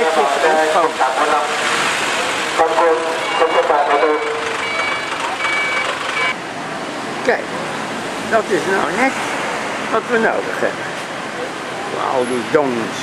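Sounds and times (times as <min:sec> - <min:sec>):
people's voices: 0:00.0 - 0:06.4
bus engines and traffic: 0:00.0 - 0:13.0
high electronic beeps: 0:03.2 - 0:06.4.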